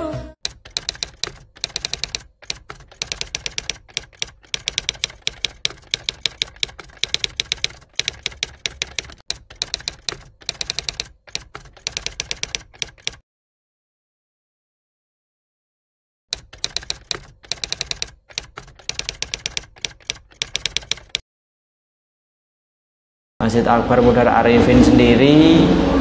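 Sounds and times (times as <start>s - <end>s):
typewriter key clicks: 0.4s - 13.2s, 16.3s - 21.2s.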